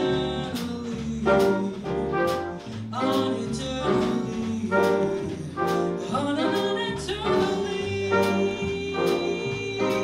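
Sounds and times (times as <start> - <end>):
jazz band playing: 0.0 - 10.0
woman singing: 0.0 - 10.0.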